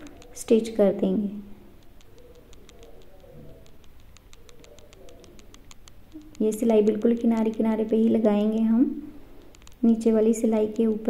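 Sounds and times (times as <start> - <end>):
pigeon cooing: 2.0 - 5.4.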